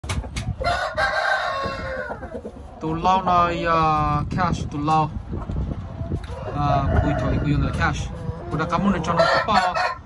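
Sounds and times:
rooster crowing: 0.6 - 2.3, 9.1 - 10.0.

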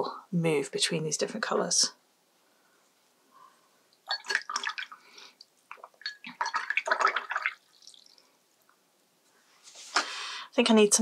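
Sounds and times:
paintbrush splashing in water jar: 4.1 - 5.0, 5.7 - 8.2.

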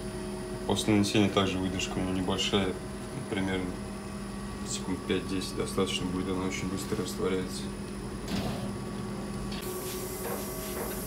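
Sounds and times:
mechanical hum of equipment: 0.0 - 11.0.

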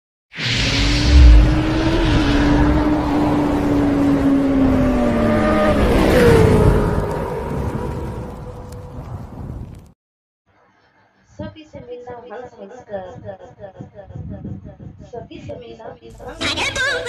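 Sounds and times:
whoosh: 0.4 - 4.1
low boom: 0.6 - 3.8.

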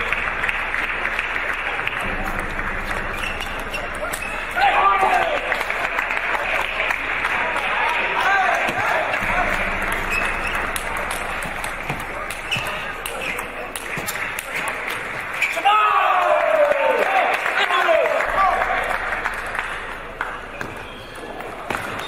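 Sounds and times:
murmur of voices: 0.0 - 22.0.

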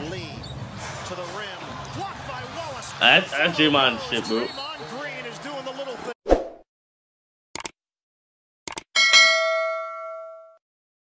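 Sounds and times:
notification bell ding: 9.0 - 10.6.

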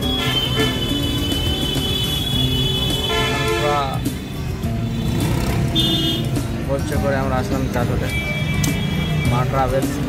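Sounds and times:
background music: 0.0 - 10.0
street traffic rumble: 0.0 - 10.0.

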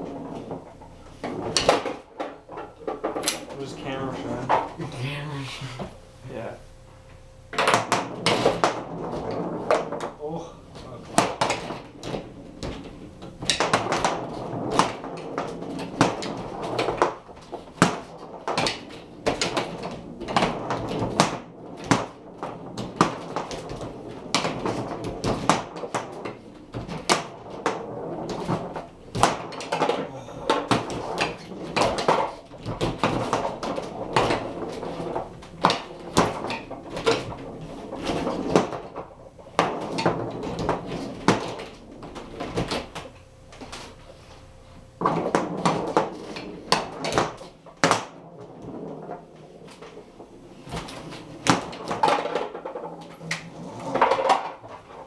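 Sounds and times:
foosball ball clacks and knocks: 0.0 - 4.8, 7.5 - 43.9, 45.0 - 55.0.

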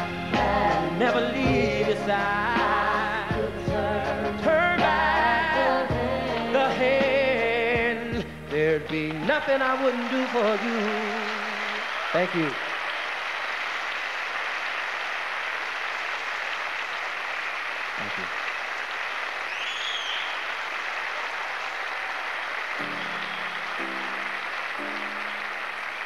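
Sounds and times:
audience applauding: 8.8 - 26.0
short high whistle: 19.5 - 20.4.

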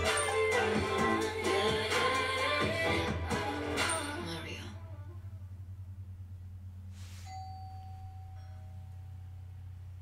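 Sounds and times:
bell-like chime: 0.0 - 0.7, 7.2 - 9.6
steady low hum: 0.0 - 10.0
brief hiss: 6.9 - 7.5.

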